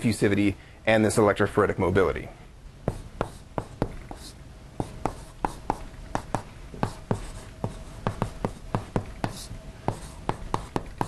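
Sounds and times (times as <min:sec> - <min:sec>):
chalk tapping on blackboard: 0:02.8 - 0:11.0.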